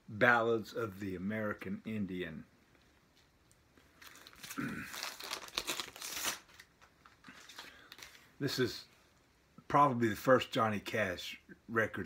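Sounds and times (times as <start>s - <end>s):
plastic record sleeve crinkling: 2.7s - 8.5s
person clearing throat: 4.5s - 5.0s.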